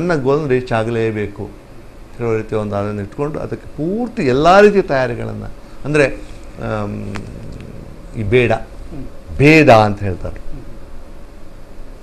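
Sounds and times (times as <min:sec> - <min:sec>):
man talking: 0:00.0 - 0:01.6, 0:02.2 - 0:10.6.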